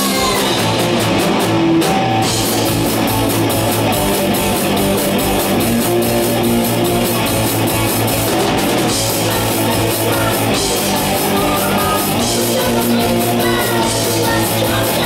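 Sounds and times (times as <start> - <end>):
punk rock band playing: 0.0 - 15.0.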